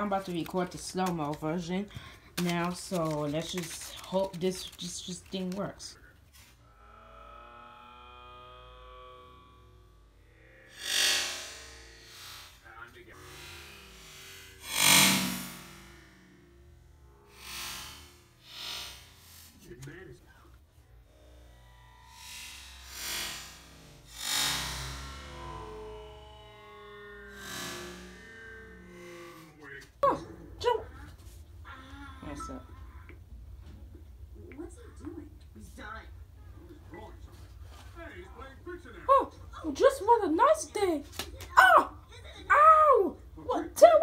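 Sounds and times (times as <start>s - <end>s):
deep warped slowed-down sounds: 6.6s - 19.7s, 20.7s - 30.6s.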